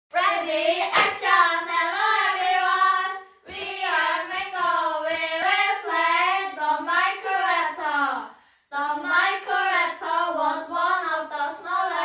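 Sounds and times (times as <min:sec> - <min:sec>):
girls singing together: 0:00.1 - 0:12.0
sharp hand clap: 0:00.8 - 0:01.4.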